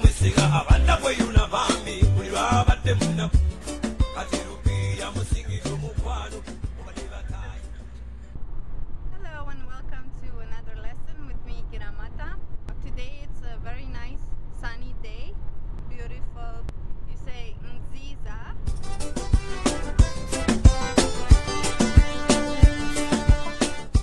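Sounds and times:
music: 0.0s - 7.9s, 18.7s - 24.0s
woman talking: 9.1s - 18.6s.

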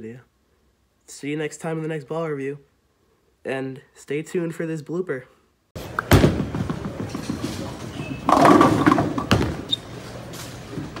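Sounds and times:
bowling pins crashing: 5.8s - 9.7s
bowling ball rolling: 5.8s - 10.0s.

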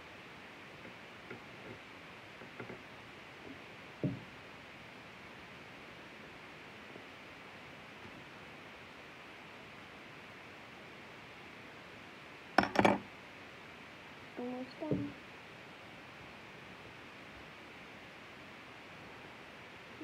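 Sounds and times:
room hiss: 0.0s - 20.0s
soft knock: 4.0s - 4.3s, 14.9s - 15.2s.

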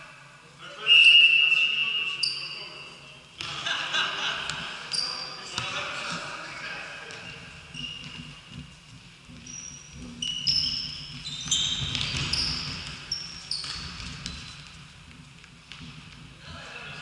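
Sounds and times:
shoes squeaking on court floor: 0.9s - 3.6s, 4.4s - 16.4s.

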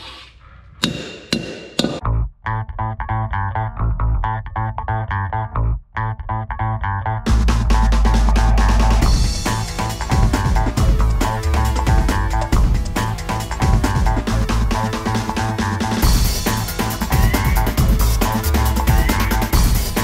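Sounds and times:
hammer striking steel: 0.8s - 2.0s
background music with steady beat: 0.8s - 2.1s, 7.3s - 20.0s.

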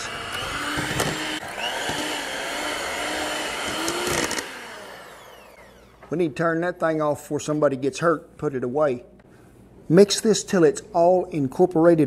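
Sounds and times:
electric hand mixer running: 0.0s - 6.1s.

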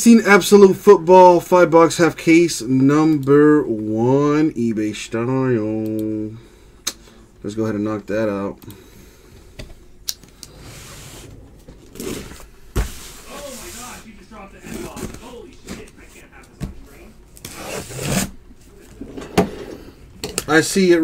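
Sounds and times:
cardboard boxes scraping and rustling: 10.6s - 15.3s, 17.4s - 18.4s.

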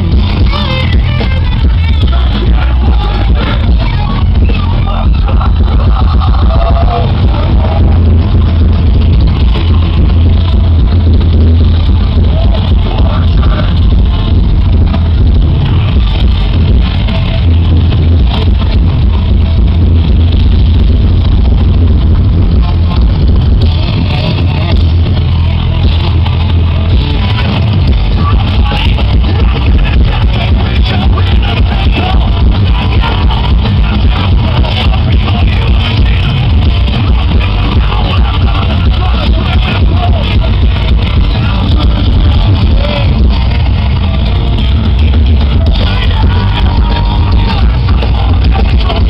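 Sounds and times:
thrash metal band playing: 0.0s - 49.0s.

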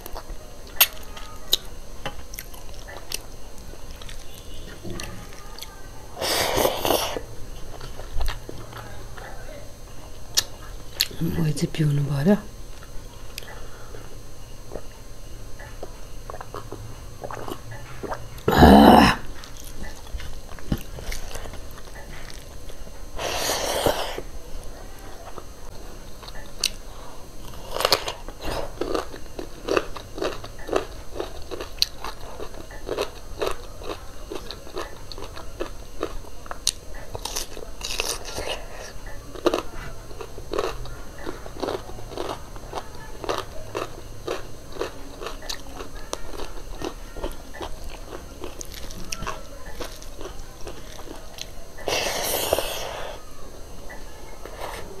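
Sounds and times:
crunchy chewing of food: 0.0s - 11.4s, 12.6s - 55.0s
throaty vocal sound: 18.5s - 19.3s
close chewing: 27.4s - 53.0s.

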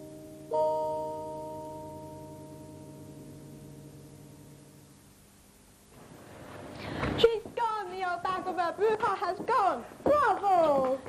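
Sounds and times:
piano chord ringing: 0.0s - 5.4s.

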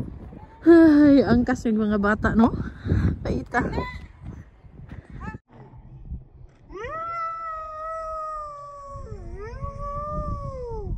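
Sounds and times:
child holding high whooo: 6.8s - 10.9s.

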